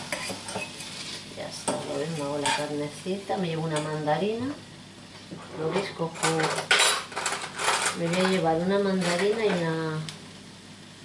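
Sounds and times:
dishes and utensils clattering: 5.8 - 8.4.

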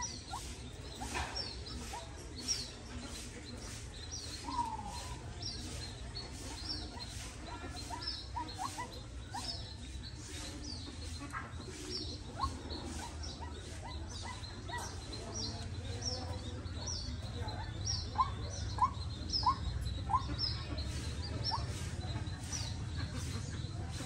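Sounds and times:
small bird chirping: 0.0 - 24.0.

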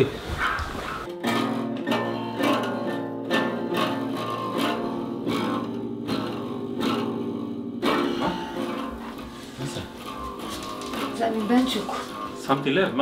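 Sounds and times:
acoustic guitar strummed hard: 0.4 - 13.0.

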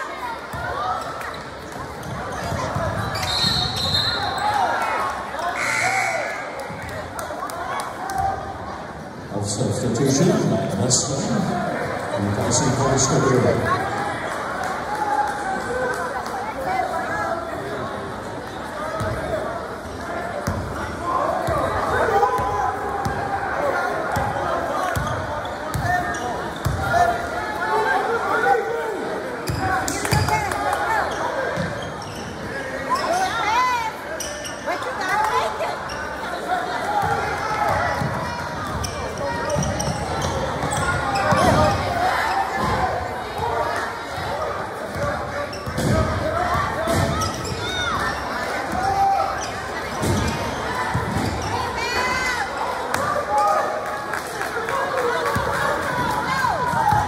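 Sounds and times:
people calling out: 5.4 - 6.6.

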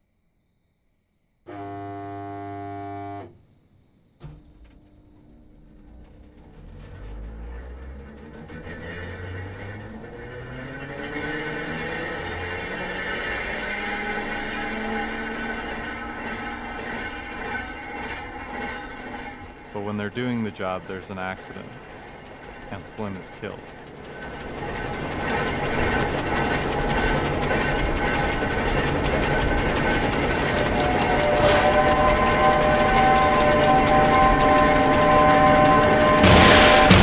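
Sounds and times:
train horn blast: 1.5 - 3.4, 30.5 - 37.0
freight train rumbling and squealing: 5.0 - 37.0
metal clank: 31.2 - 37.0.

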